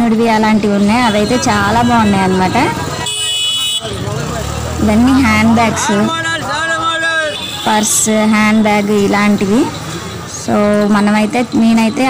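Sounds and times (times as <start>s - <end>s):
faint street chatter: 0.0s - 12.0s
high-pitched horn toot: 0.8s - 4.0s.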